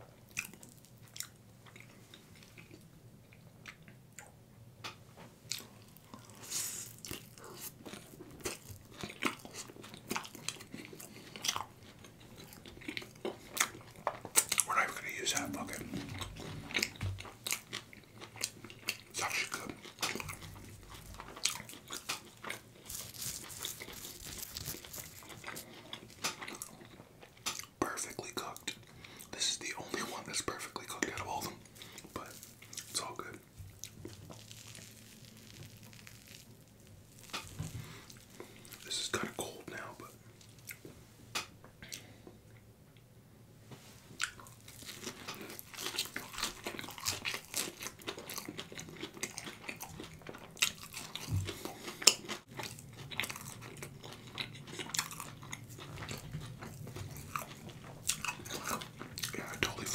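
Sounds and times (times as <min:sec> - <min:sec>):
wet chewing and smacking: 0:00.2 - 0:42.7, 0:44.1 - 0:59.9
crisp crunches of fried food: 0:05.5 - 0:29.3, 0:30.0 - 0:40.9, 0:44.1 - 0:59.9.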